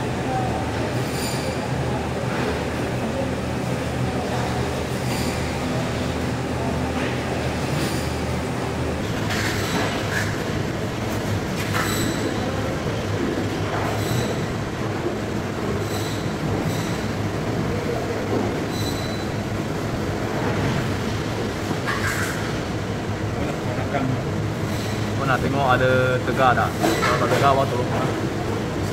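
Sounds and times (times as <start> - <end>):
machinery hum: 0.0 - 28.9.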